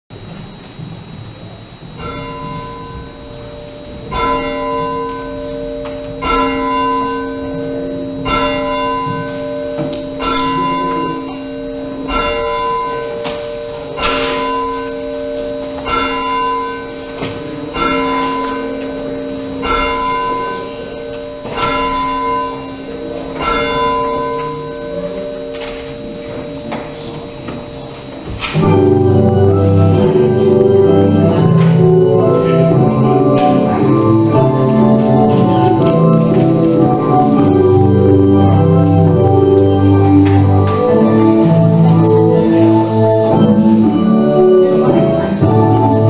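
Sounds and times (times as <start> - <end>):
church bell tolling: 0.2 - 46.0.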